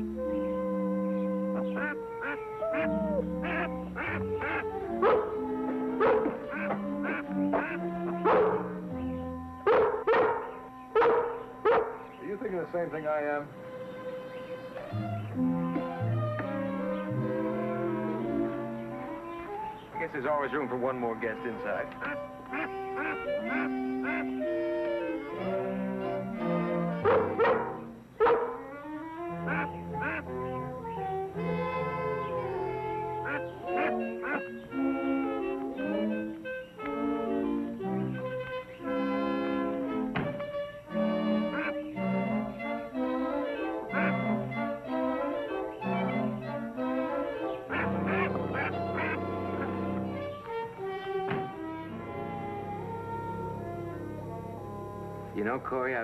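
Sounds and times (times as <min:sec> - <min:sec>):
orchestral music: 0:00.0 - 0:09.8, 0:10.4 - 0:28.1, 0:28.7 - 0:56.0
goose honking: 0:00.0 - 0:56.0.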